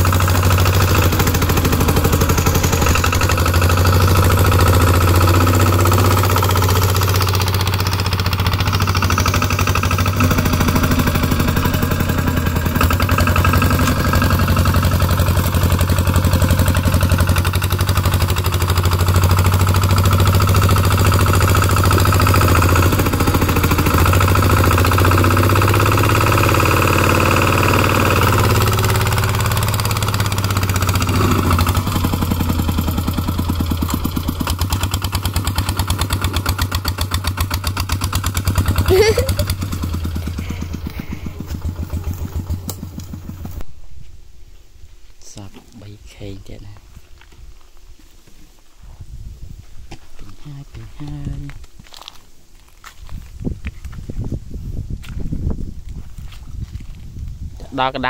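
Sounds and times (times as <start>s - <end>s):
diesel engine chugging: 0.0s - 43.6s.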